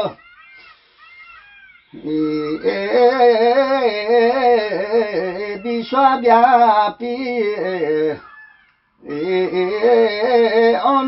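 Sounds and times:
faint high arching calls: 0.0 - 2.7, 8.1 - 9.5
man singing: 2.0 - 8.2, 9.0 - 11.0.

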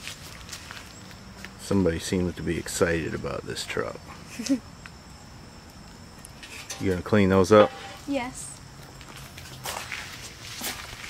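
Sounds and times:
outdoor background: 0.0 - 11.0
person laughing: 4.3 - 4.7.

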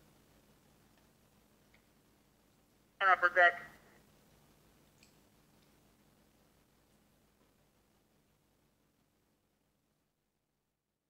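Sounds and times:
man speaking over radio: 3.0 - 3.8.

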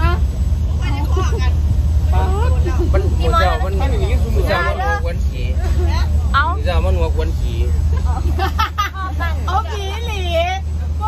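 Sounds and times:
people talking: 0.0 - 11.0
steady low rumble: 0.0 - 11.0.

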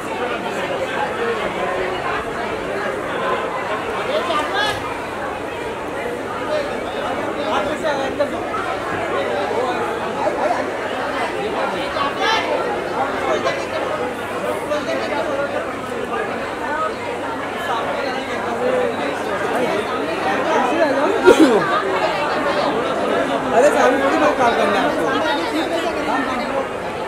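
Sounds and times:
crowd chatter: 0.0 - 27.0.

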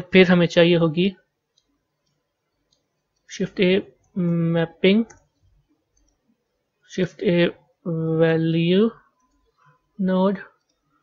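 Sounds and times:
person speaking: 0.0 - 6.2, 6.8 - 11.0
mouse and keyboard clicks: 1.5 - 3.3, 5.0 - 6.3.

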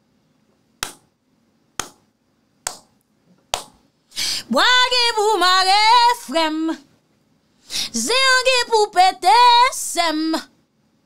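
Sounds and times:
finger snaps: 2.6 - 3.8.

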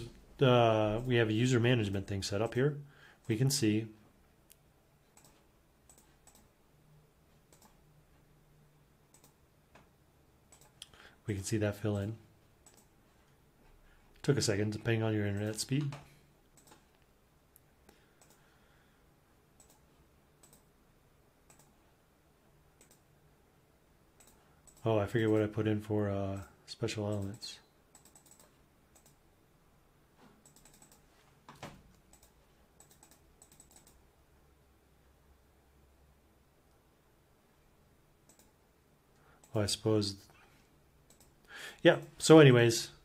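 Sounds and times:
room hum: 0.0 - 43.0
computer mouse clicks: 4.5 - 6.5, 7.4 - 7.8, 9.1 - 9.9, 10.5 - 11.0, 12.6 - 12.9, 15.3 - 17.1, 17.9 - 18.5, 19.6 - 20.7, 21.5 - 21.8, 22.8 - 23.1, 24.2 - 25.5, 27.1 - 29.2, 30.4 - 34.0, 38.2 - 38.6, 41.1 - 41.4.

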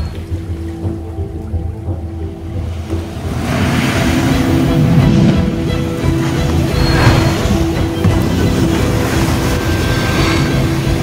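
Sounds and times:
background music with held notes: 0.0 - 11.0
motorboat rushing through water: 0.0 - 11.0.

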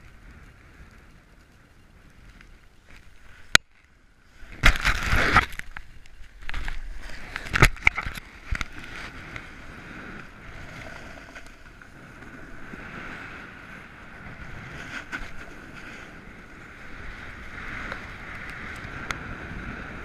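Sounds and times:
wind on microphone: 4.4 - 20.0
skis scraping on snow: 8.1 - 20.0.

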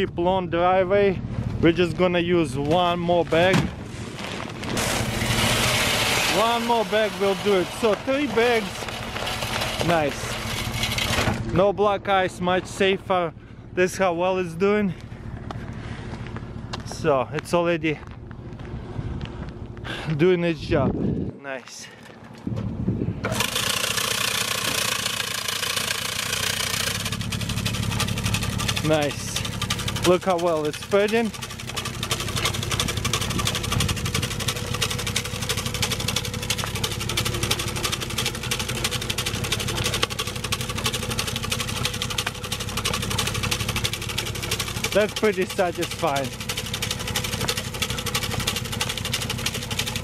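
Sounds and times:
vehicle engine rumble: 0.0 - 50.0
salt crackling on pavement: 3.2 - 11.1, 23.6 - 50.0
wind on microphone: 20.7 - 21.4, 22.4 - 23.3.

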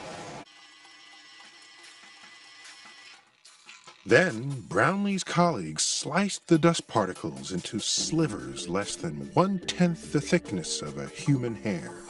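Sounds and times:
soft background music: 4.0 - 12.0.

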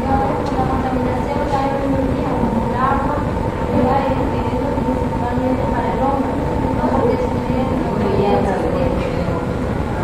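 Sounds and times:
faint voices talking: 0.0 - 10.0
low rumbling noise: 0.0 - 10.0.

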